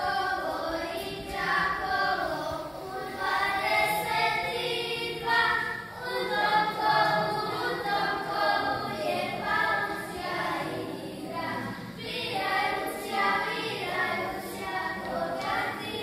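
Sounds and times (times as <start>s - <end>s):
children singing: 0.0s - 16.0s.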